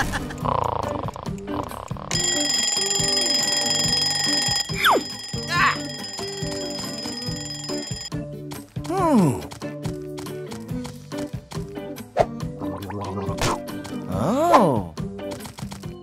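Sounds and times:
background music: 0.0s - 16.0s
alarm clock ringing: 2.1s - 8.1s.

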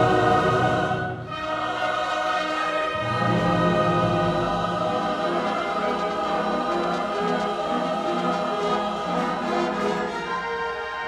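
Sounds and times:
choir singing held chords: 0.0s - 11.0s
string accompaniment with cellos: 0.0s - 11.0s.

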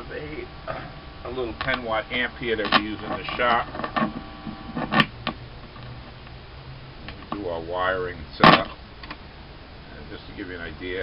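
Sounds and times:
amplifier mains hum: 0.0s - 11.0s
guitar amplifier pop: 0.7s - 1.9s, 2.5s - 6.4s, 8.4s - 9.2s.

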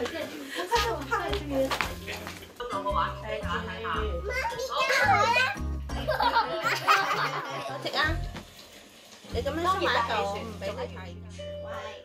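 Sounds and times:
background music with low notes: 0.0s - 12.0s
children's voices playing: 4.3s - 5.7s.

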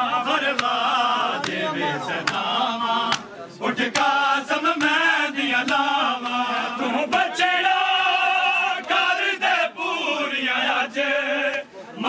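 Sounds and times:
men chanting in unison: 0.0s - 12.0s
chest-beating slaps: 0.5s - 0.8s, 2.2s - 2.5s, 3.1s - 4.2s, 4.8s - 5.0s.

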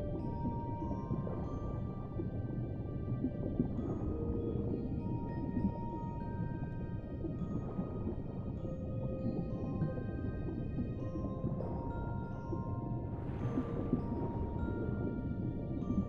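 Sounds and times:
muffled underwater rumble: 0.0s - 16.0s.

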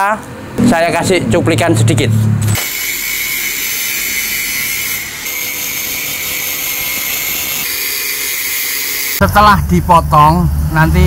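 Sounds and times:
angle grinder cutting steel tube: 2.5s - 9.2s.

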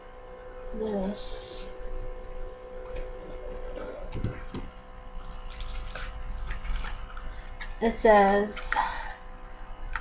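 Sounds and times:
package rustling: 5.2s - 7.0s.

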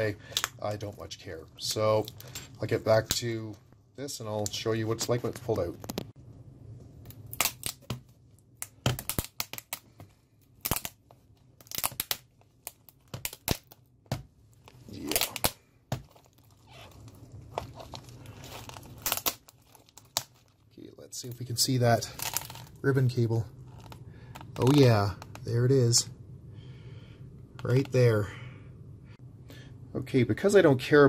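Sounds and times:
adhesive tearing with cracks: 7.0s - 20.6s.

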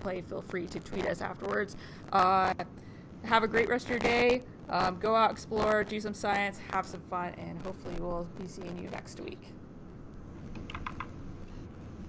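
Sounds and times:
low room hum: 0.0s - 12.0s
computer mouse clicks: 10.5s - 11.2s.

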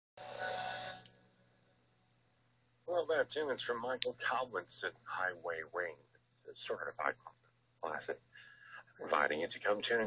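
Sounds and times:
faint steady hum: 0.2s - 10.0s.

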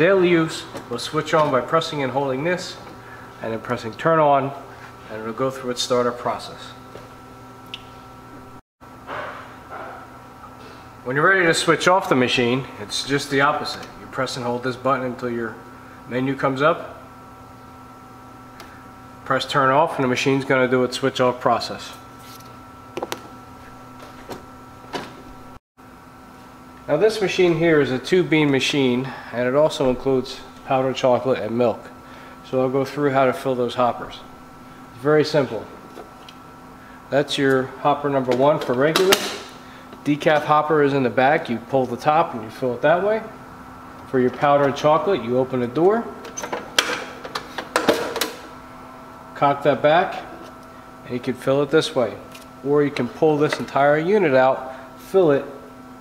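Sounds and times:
coffee machine hum: 0.0s - 56.0s.

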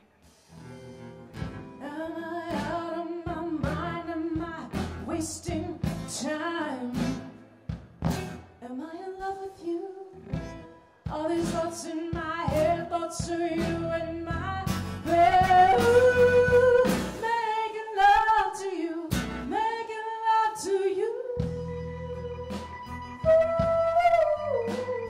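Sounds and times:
live band music: 0.1s - 1.8s, 3.6s - 6.2s, 7.0s - 8.5s, 10.3s - 17.4s, 19.1s - 19.5s, 21.4s - 25.0s.

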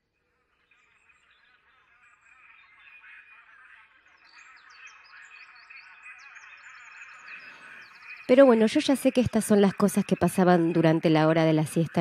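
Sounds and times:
small birds chirping: 0.4s - 12.0s.

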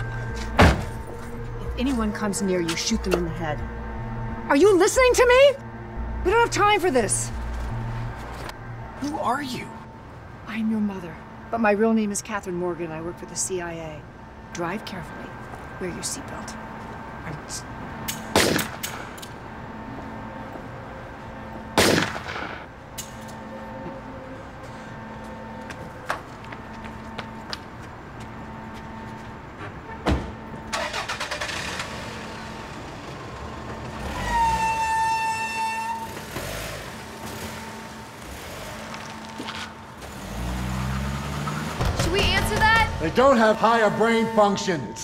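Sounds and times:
low rising engine note: 0.0s - 18.1s
car engine starting: 30.6s - 34.6s
loud horn tone: 34.0s - 39.3s, 42.3s - 45.0s.

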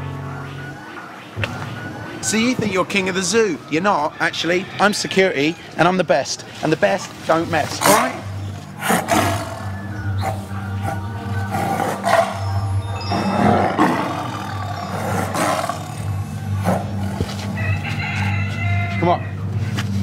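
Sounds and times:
background music: 0.0s - 20.0s
lion roaring and growling: 7.8s - 17.6s.

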